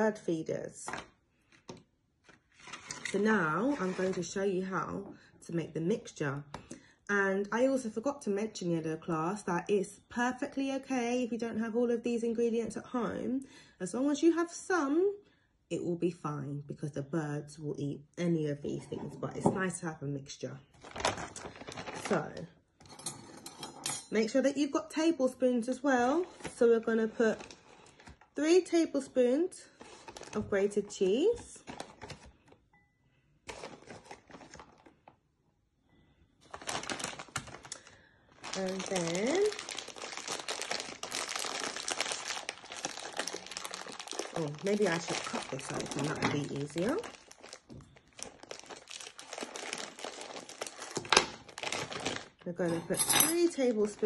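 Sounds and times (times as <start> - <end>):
plastic bag crinkling: 20.7 - 22.4, 29.8 - 32.5, 33.4 - 35.2, 36.4 - 52.7, 53.3 - 54.0.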